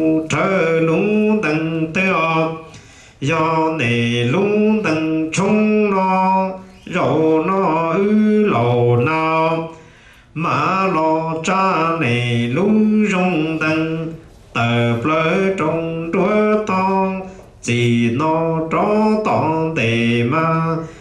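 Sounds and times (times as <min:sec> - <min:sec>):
man chanting a lament: 0:00.0 - 0:21.0
man breathing between phrases: 0:02.7 - 0:03.2, 0:09.7 - 0:10.3.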